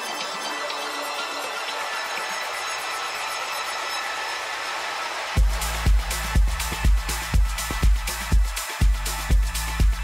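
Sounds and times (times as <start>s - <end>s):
house music breakdown: 1.4s - 10.0s.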